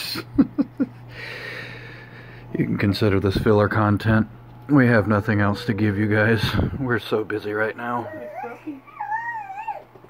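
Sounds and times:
dog whining: 8.0 - 10.0.

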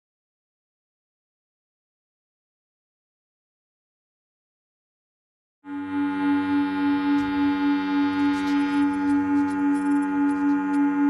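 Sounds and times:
pulsing bell-like electronic drone: 5.7 - 11.0.

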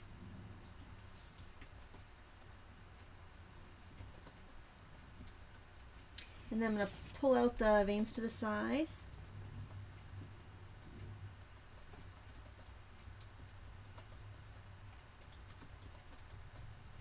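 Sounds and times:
low steady hum: 0.0 - 17.0
keyboard typing: 0.6 - 2.6, 3.5 - 6.0, 7.4 - 17.0.

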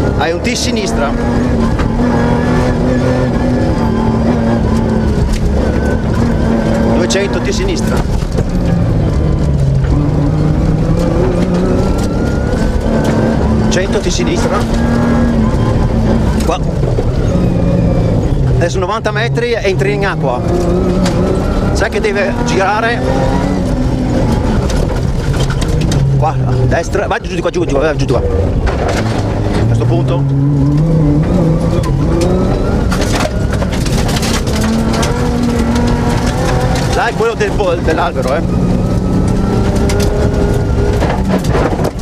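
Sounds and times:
car engine running loud: 0.0 - 42.0
sharp knocks and rattles: 31.2 - 37.4, 39.0 - 42.0.

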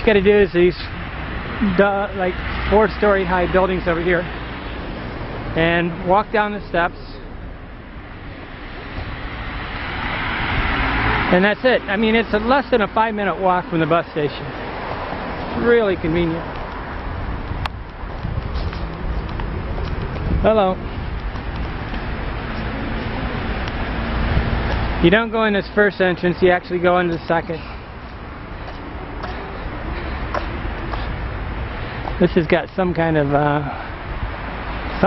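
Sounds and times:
traffic rumble: 0.0 - 35.0
vehicle passing on road: 0.0 - 35.0.

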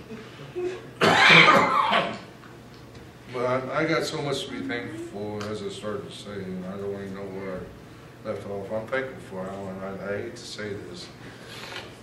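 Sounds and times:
man coughing: 0.6 - 2.2.

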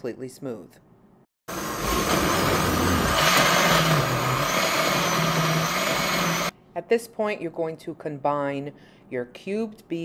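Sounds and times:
blender running: 1.5 - 6.5.

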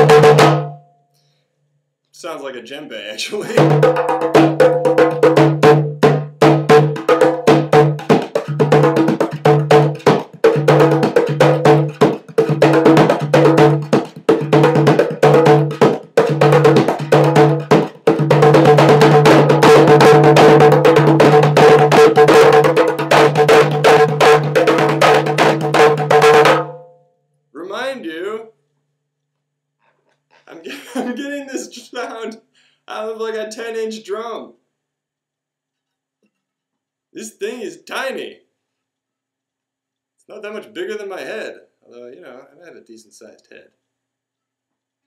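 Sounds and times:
hand drum playing quick rhythm: 0.0 - 0.8, 3.5 - 26.8.

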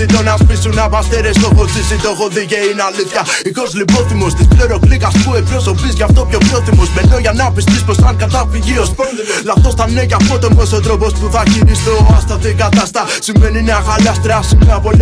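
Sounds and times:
deep bass and kick drums: 0.0 - 2.0, 3.9 - 9.0, 9.6 - 12.8, 13.4 - 15.0
rapping over a beat: 0.0 - 15.0.

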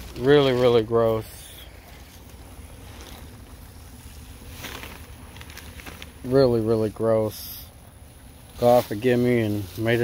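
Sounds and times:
faint rustle: 0.0 - 10.0.

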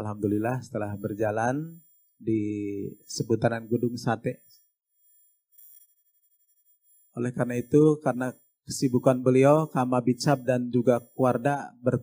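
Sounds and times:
high-pitched electronic tone: 0.0 - 12.0.

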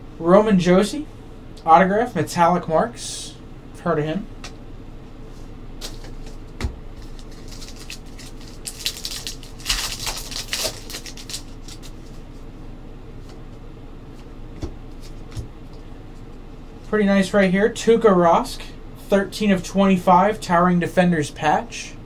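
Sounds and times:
cards clicking and rustling: 7.0 - 12.2
foil wrapper tearing and crinkling: 7.0 - 12.2.

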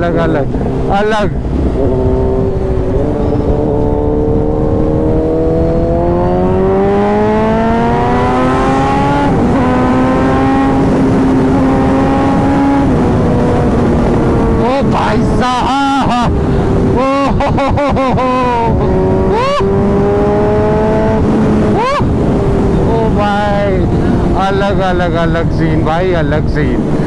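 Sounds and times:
motorcycle engine accelerating: 0.0 - 25.5
person calling out: 18.3 - 19.7, 21.7 - 22.2.

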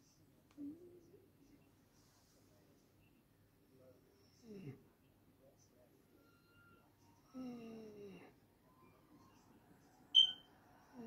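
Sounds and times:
faint room noise: 0.0 - 11.0
high-pitched beep: 10.2 - 10.4.

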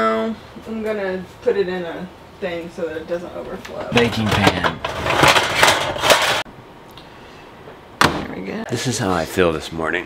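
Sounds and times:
metal baking pans clattering: 3.8 - 6.4.

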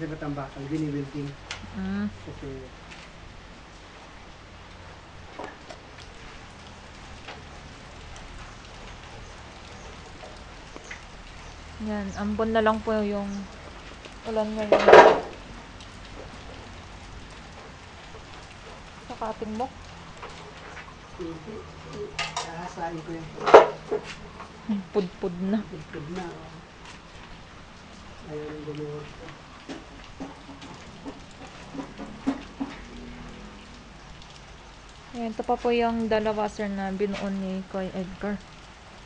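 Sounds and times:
rain on concrete: 0.0 - 39.0
sharp rain ticks: 0.0 - 39.0
person speaking: 24.6 - 26.6.

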